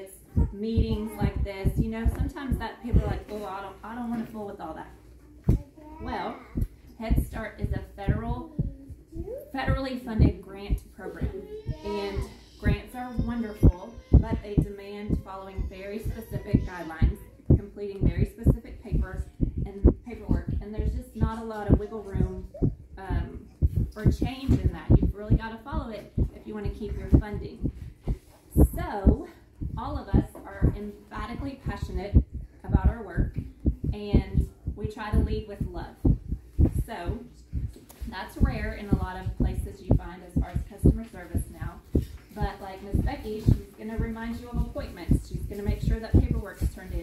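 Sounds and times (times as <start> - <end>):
woman speaking: 0.0 - 5.0, 6.0 - 8.7, 9.5 - 37.4, 38.0 - 47.0
woman talking: 0.0 - 5.0, 6.0 - 8.7, 9.5 - 37.4, 38.0 - 47.0
dull low thumps: 0.4 - 3.2, 6.5 - 9.1, 9.7 - 47.0.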